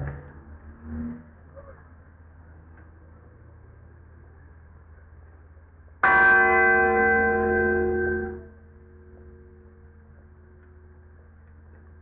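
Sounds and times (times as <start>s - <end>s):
bell ringing: 6.0s - 8.6s.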